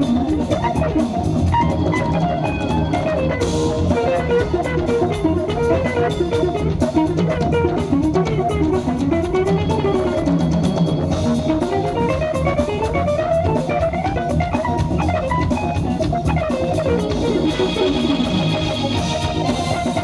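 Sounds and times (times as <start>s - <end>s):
drum kit: 0.0s - 20.0s
electric bass: 0.0s - 20.0s
electric guitar fast runs: 0.0s - 20.0s.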